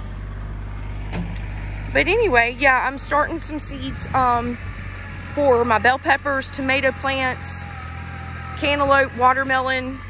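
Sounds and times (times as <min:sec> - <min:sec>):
tractor engine humming: 0:00.0 - 0:10.0.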